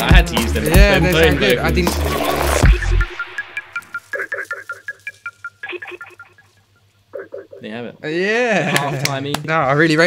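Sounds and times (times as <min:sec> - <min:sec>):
high electronic phone beeps: 0:02.2 - 0:07.7.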